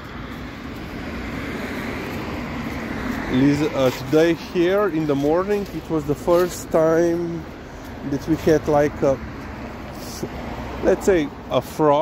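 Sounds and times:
car passing by: 0.0s - 12.0s.

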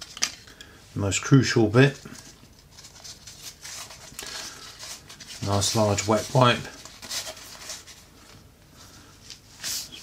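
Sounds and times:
cleaning wipe rustling: 1.6s - 10.0s.

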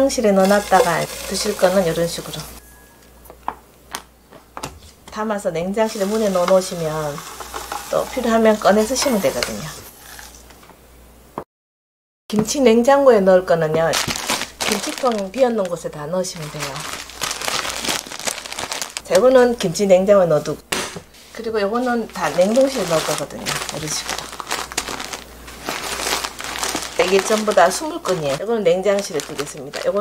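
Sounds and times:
plastic bag crinkling: 0.2s - 2.6s, 5.9s - 9.7s, 13.8s - 19.6s, 21.7s - 30.0s.

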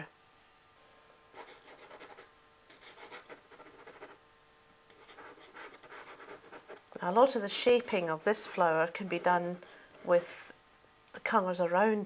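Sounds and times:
pastel stick scratching paper: 1.4s - 4.2s, 4.9s - 6.8s.

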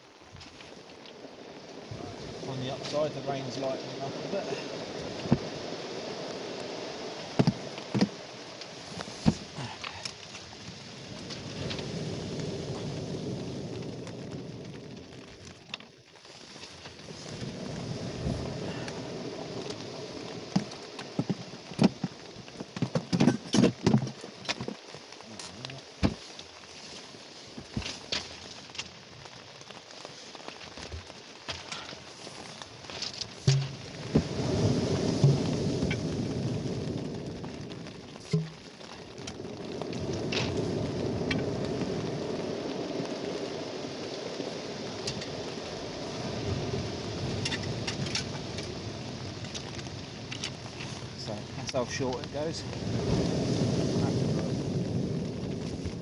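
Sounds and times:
rain on fabric shelter: 0.0s - 56.0s.

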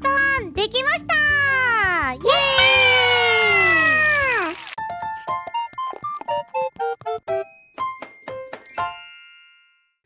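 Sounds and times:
background music: 0.0s - 9.5s.

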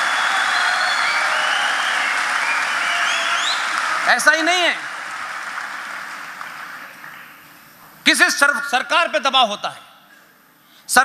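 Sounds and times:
audience applause: 0.0s - 7.4s.

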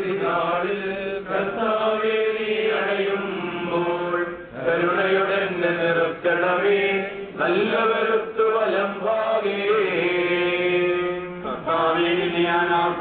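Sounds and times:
person chanting into microphone: 0.0s - 13.0s.

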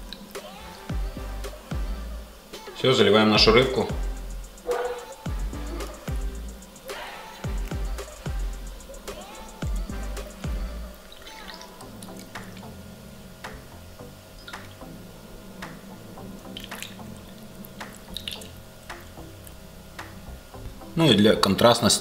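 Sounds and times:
background music with soft beat: 0.0s - 22.0s
broth dripping from ladle: 16.4s - 19.6s.

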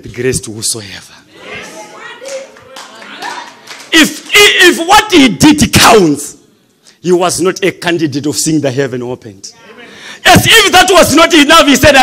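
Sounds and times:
congregation clapping: 2.1s - 5.0s.

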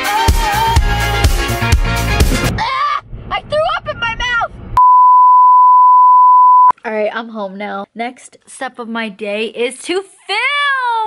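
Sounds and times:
censor bleep tone: 4.8s - 6.7s.

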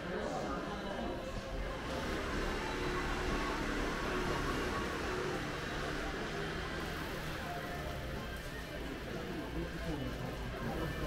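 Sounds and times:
shopping arcade hiss and hum: 0.0s - 11.0s.

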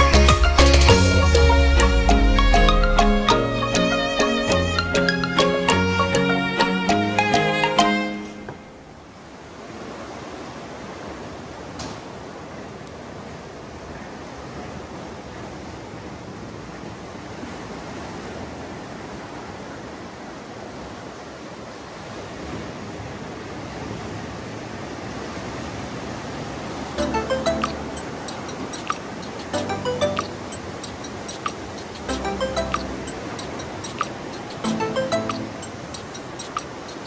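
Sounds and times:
ocean surf breaking on rocks: 8.4s - 37.0s.

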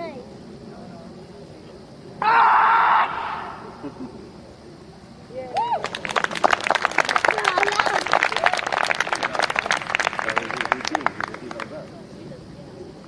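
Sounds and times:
spectators clapping and cheering: 5.6s - 11.8s.

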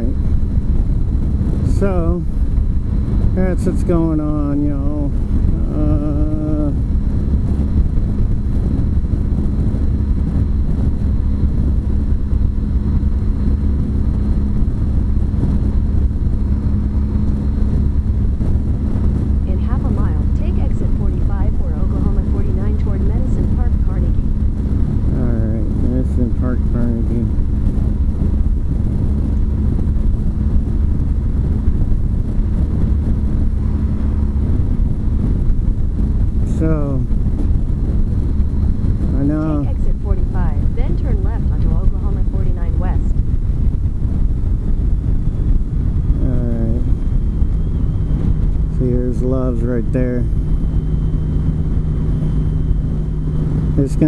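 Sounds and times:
motorcycle engine drone: 0.0s - 54.0s
road and wind noise: 0.0s - 54.0s.

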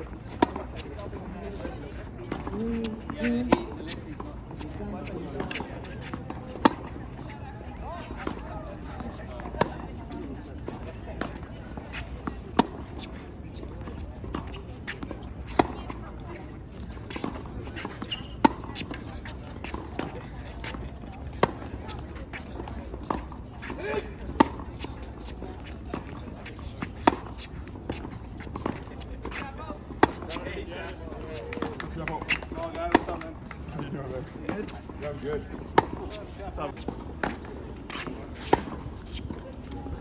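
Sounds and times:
tennis ball bouncing: 0.0s - 7.2s, 8.2s - 39.8s
racket hitting tennis ball: 0.3s - 1.3s, 5.0s - 7.0s, 8.2s - 16.0s, 16.8s - 39.3s.

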